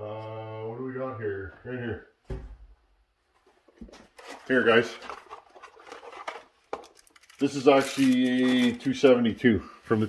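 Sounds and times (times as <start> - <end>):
faint low thump: 2.2 - 2.8.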